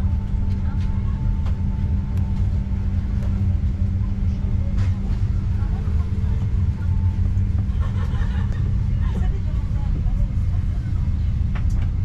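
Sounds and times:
airplane cabin ventilation hum: 0:00.0 - 0:12.0
faint voices: 0:00.0 - 0:12.0.

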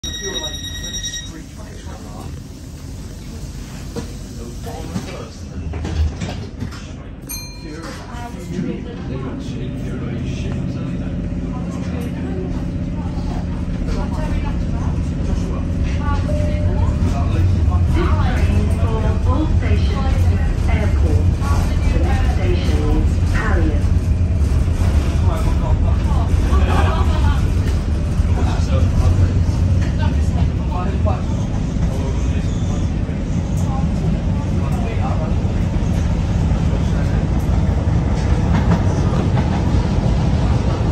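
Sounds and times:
high-pitched beep: 0:00.0 - 0:01.4
train car low rumble: 0:00.0 - 0:40.9.

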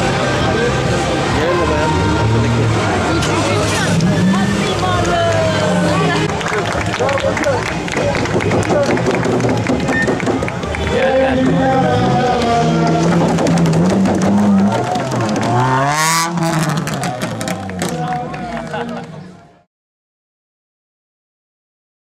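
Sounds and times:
rally car engine revving: 0:00.0 - 0:19.2
crowd chatter: 0:00.0 - 0:19.7.

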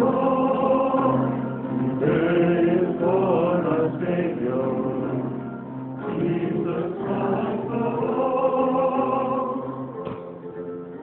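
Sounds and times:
choir singing slow hymn: 0:00.0 - 0:10.6.

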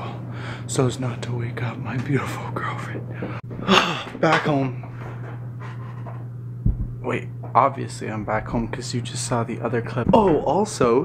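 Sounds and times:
low hum: 0:00.0 - 0:11.0
low thump: 0:06.6 - 0:07.0, 0:08.3 - 0:08.8, 0:10.0 - 0:10.5.

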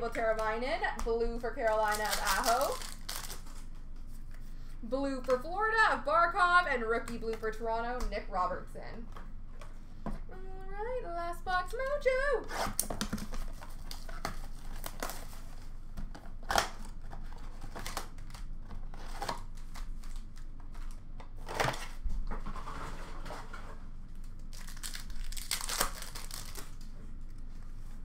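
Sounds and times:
wrappers crinkling: 0:01.5 - 0:04.2, 0:24.2 - 0:26.9
wrapper tearing rip: 0:01.7 - 0:03.7, 0:24.4 - 0:26.9.

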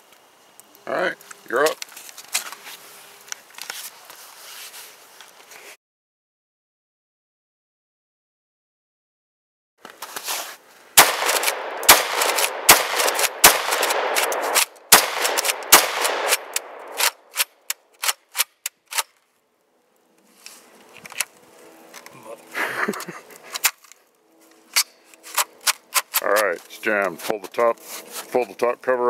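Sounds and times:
shotgun shots: 0:11.0 - 0:17.5
light sharp gun clicks: 0:11.0 - 0:19.1.

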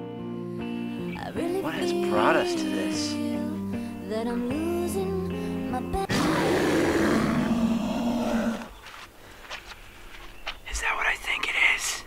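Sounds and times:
bear roar: 0:06.1 - 0:08.8.

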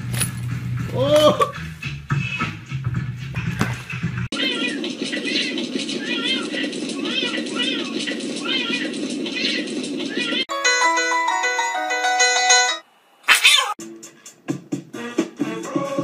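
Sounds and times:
steady background hum: 0:04.3 - 0:10.4
cats yowling: 0:04.3 - 0:10.5, 0:13.3 - 0:13.8
plinking piano-like melody: 0:10.5 - 0:12.8
loud short high cry: 0:13.3 - 0:13.8.

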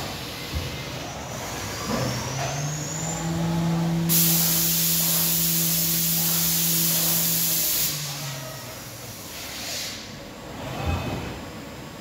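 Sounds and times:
servo motors humming: 0:01.7 - 0:08.3.

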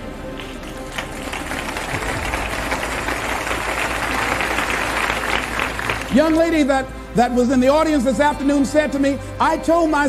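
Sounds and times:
audience applauding: 0:00.3 - 0:06.6.

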